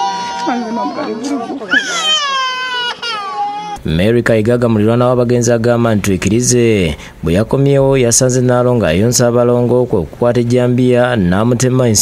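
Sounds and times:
toddler crying: 0.0 - 3.8
man talking: 3.8 - 12.0.

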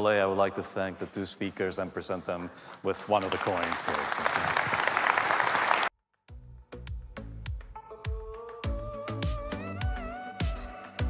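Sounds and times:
audience applauding: 2.9 - 5.9
music with steady beat: 6.3 - 11.0.

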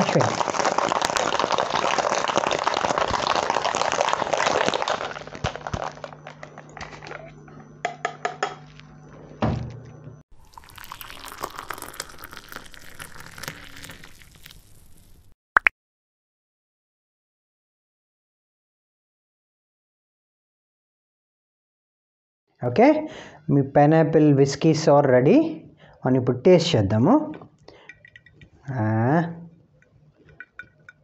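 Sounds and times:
drink pouring into glass: 0.0 - 6.0, 10.3 - 15.2
ice rattling in metal shaker: 0.0 - 6.1, 10.5 - 14.7.

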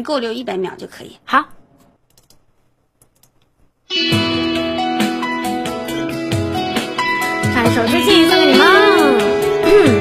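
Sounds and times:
song backing track with guitar: 3.9 - 10.0.

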